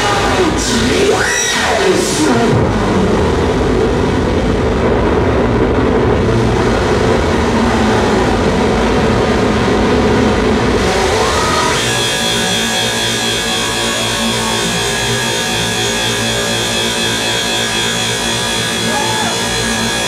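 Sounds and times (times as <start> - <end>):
distorted noise wall: 0.0 - 20.0
falling noise sweep: 1.2 - 20.0.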